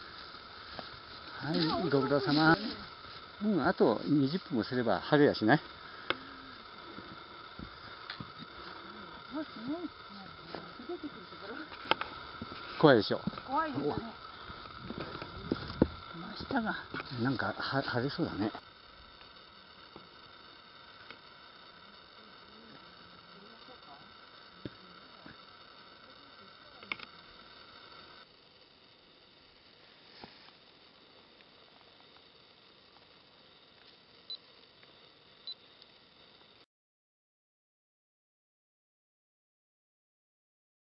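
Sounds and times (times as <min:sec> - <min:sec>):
outdoor background hiss: 0:00.0 - 0:36.7
camera beeps: 0:35.4 - 0:35.7.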